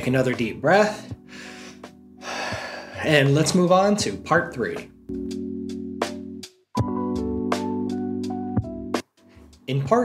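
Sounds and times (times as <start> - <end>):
soft background music: 0.0 - 10.0
person breathing in deeply: 1.2 - 3.0.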